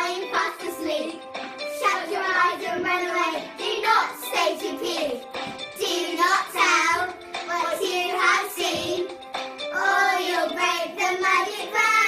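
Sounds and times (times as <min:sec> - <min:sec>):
children singing: 0:05.8 - 0:09.1, 0:09.7 - 0:12.0.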